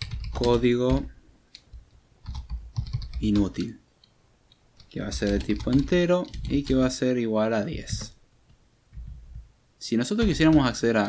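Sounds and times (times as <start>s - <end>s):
computer keyboard typing: 0.0s - 3.6s, 4.5s - 7.0s, 7.8s - 8.2s, 10.2s - 11.0s.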